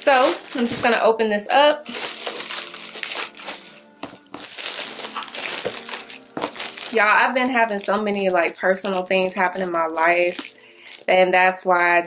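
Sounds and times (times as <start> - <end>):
plastic wrap crinkling and tearing: 0.0 - 0.9, 1.8 - 11.1
quiet background music: 0.0 - 12.0.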